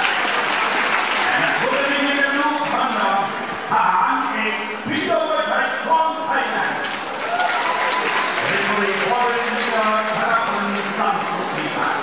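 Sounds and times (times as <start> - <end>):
crowd noise: 0.0 - 12.0
man speaking: 1.4 - 6.8, 8.5 - 12.0.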